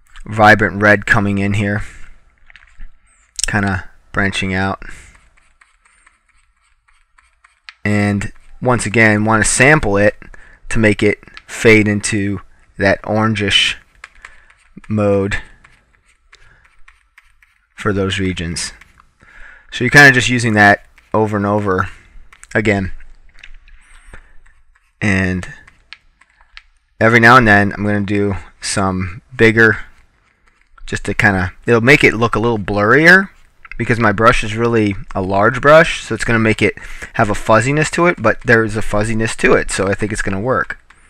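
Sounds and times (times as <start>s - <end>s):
low room noise: 0.0s - 41.0s
stylus scratching on tablet: 4.3s - 10.2s, 13.0s - 19.0s, 19.8s - 22.7s, 23.8s - 26.4s, 29.5s - 31.4s.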